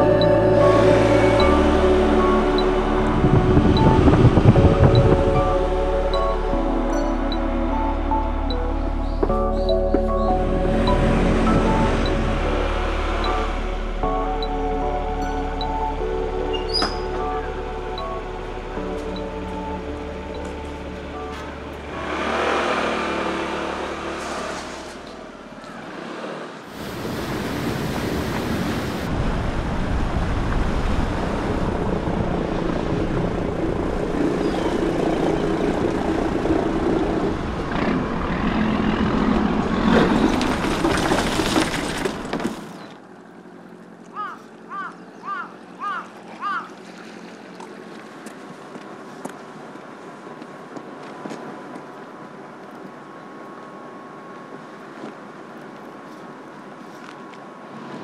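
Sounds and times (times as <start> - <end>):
background music: 0.0 - 25.1
rushing boat wake: 0.0 - 42.8, 43.5 - 58.0
boat engine: 0.0 - 58.0.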